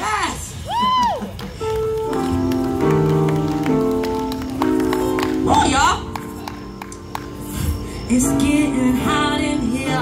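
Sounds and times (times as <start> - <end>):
person singing: 8.0 - 10.0.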